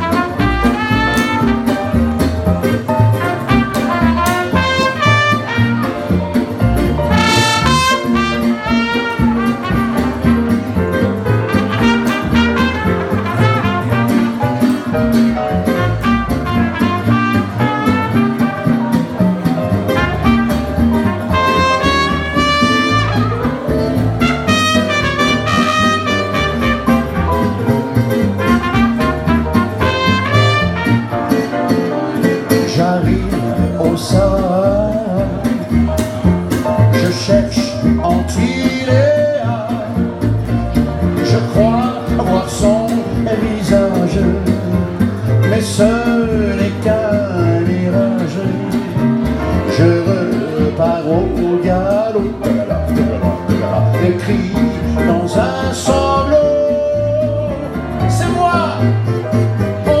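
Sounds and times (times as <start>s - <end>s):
trumpet melody: 0.0s - 32.2s, 59.8s - 60.0s
acoustic guitar: 0.0s - 60.0s
upright double bass: 0.0s - 60.0s.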